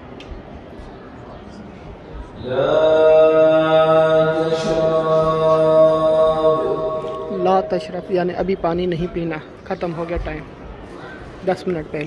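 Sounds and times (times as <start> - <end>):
man chanting a long note: 2.4 - 8.1.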